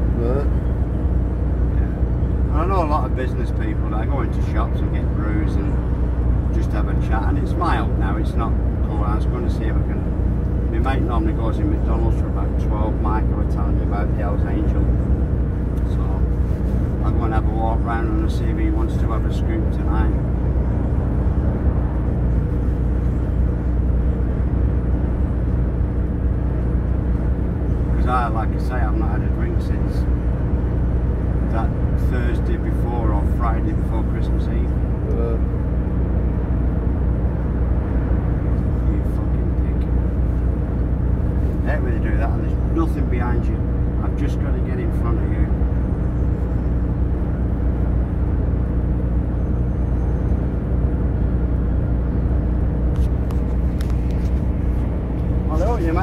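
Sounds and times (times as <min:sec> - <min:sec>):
constant hum: 0:00.0 - 0:56.0
diesel engine drone: 0:00.0 - 0:56.0
road noise: 0:00.0 - 0:56.0.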